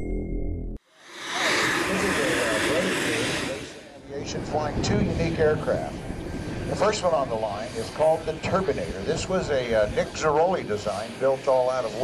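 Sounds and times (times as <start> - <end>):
jet turbine engine hiss: 0.8 - 12.0
indistinct voices: 1.0 - 8.0.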